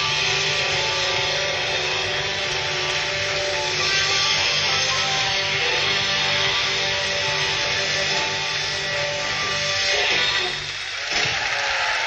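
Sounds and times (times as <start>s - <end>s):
bass: 0.0s - 10.9s
drums: 0.0s - 12.0s
electric guitar: 0.0s - 12.0s.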